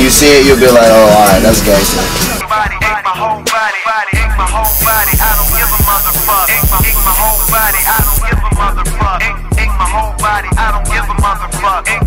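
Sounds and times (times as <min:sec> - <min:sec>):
rapping over a beat: 0:00.0 - 0:12.0
deep bass line: 0:04.4 - 0:08.9
bright hiss: 0:04.7 - 0:08.2.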